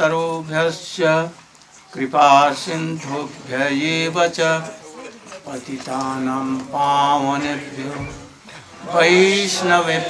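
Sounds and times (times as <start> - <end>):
man chanting prayers: 0.0 - 8.2.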